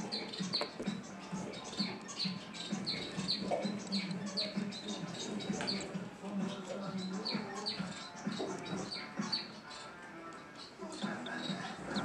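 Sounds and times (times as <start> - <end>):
rat pups squeaking: 0.0 - 12.0.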